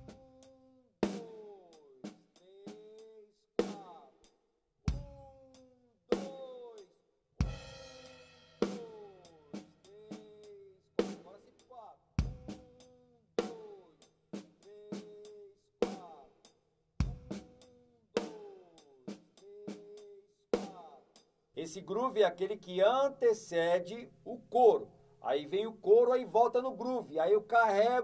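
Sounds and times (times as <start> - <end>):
drum kit groove: 0.0 - 4.0, 4.9 - 6.5, 7.4 - 11.6, 12.2 - 22.5.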